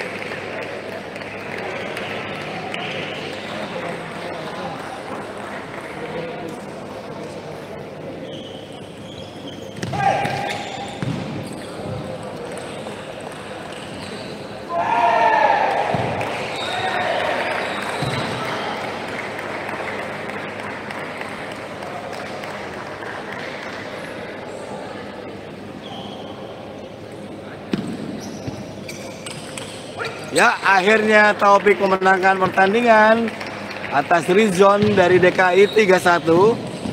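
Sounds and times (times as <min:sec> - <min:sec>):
chatter of voices in hall: 0:00.0 - 0:36.9.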